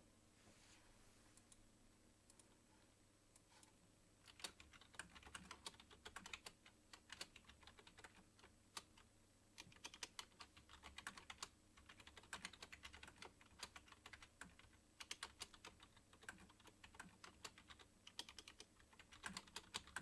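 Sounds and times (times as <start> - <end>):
typing on computer keyboard: 4.2 - 20.0.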